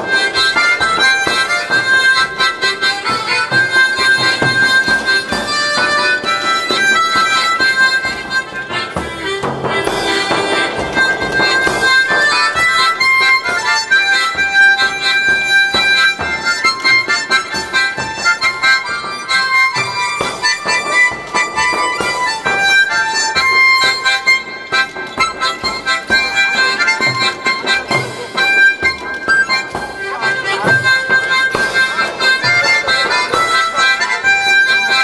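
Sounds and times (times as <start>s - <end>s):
backing track with light beat: 0.0s - 35.0s
harmonica through pa: 0.0s - 35.0s.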